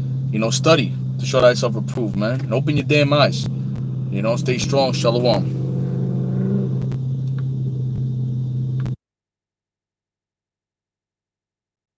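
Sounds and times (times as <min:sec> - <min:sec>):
car engine hum from cabin: 0:00.0 - 0:09.0.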